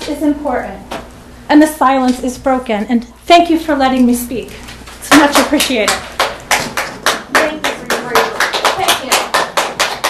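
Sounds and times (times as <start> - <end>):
audience applauding: 5.8 - 10.0.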